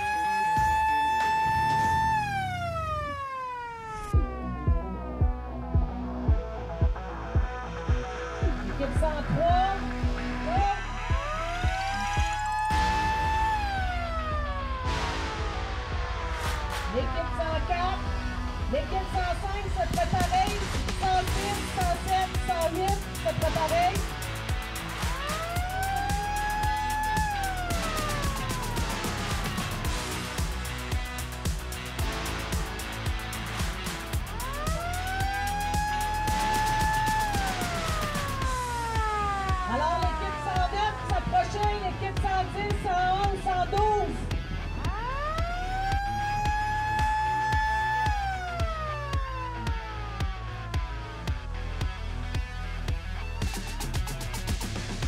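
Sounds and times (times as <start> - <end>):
two-note siren-like tone: 0.0 - 5.2, 10.7 - 18.4
electronic music with beat: 0.0 - 55.0.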